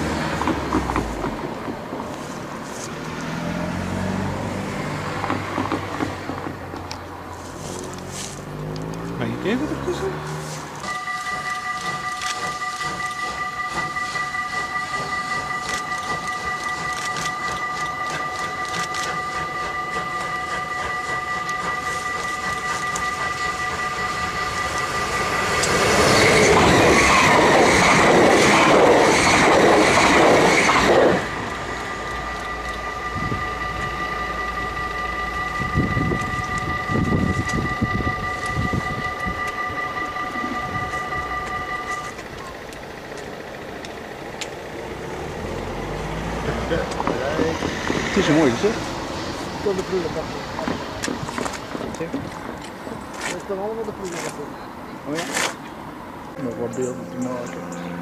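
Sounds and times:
steam train passing: 0.0 - 58.0
steady high tone: 6.6 - 55.3, 55.9 - 58.0.

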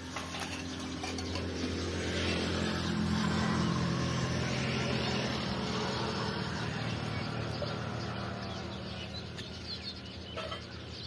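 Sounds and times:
engine humming: 0.0 - 11.0.

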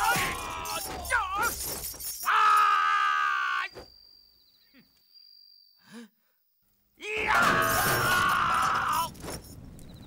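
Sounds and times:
crashing and breaking: 7.2 - 9.6.

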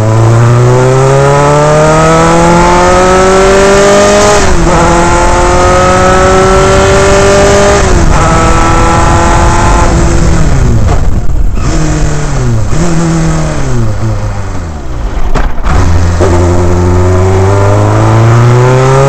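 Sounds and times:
race car engine at full throttle: 0.0 - 19.0.

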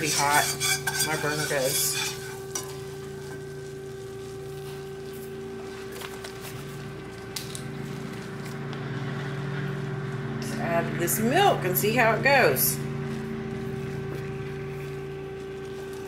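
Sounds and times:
roux sizzling in a skillet: 0.0 - 6.1, 12.8 - 16.0
steady hum: 0.0 - 16.0.

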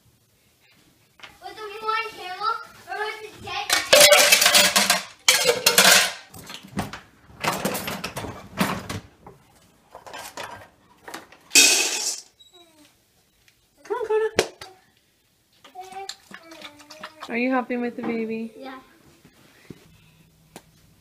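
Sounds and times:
dishes and cutlery clattering: 3.7 - 6.6, 11.5 - 12.3.

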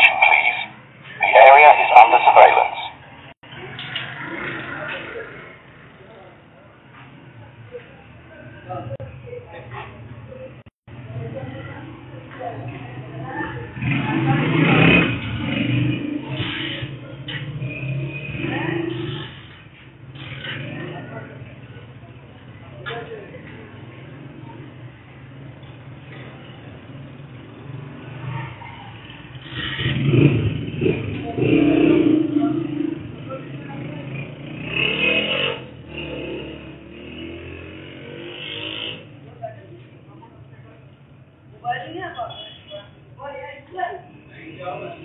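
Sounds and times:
street noise: 0.0 - 45.0
motorcycle engine revving: 12.6 - 39.4.

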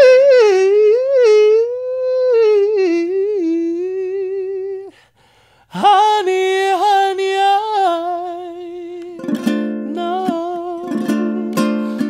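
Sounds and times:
woman singing wordless line: 5.7 - 12.0
ukulele chord: 8.9 - 12.0.

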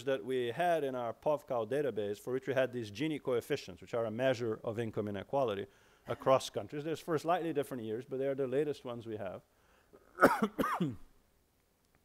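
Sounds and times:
person coughing: 10.0 - 11.1.

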